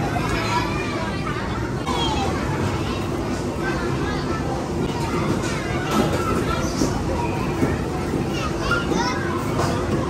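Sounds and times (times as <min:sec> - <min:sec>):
children calling and chattering: 0:00.0 - 0:10.0
din of many voices: 0:00.0 - 0:10.0.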